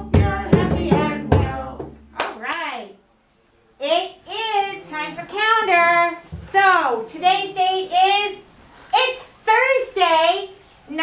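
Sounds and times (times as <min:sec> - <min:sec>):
voices singing a children's song: 0:00.0 - 0:02.0
hand drum beats: 0:00.0 - 0:02.4.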